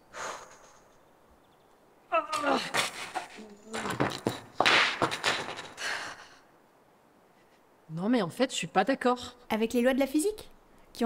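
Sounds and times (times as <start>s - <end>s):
woman groaning: 2.1s - 3.8s
exasperated breathy huffs: 5.7s - 6.4s.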